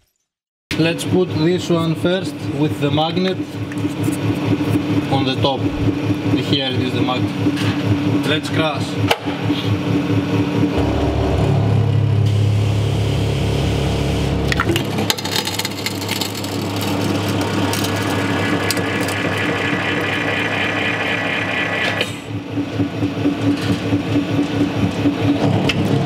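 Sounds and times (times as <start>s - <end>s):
hydraulic press pump hum: 16.0s - 22.5s.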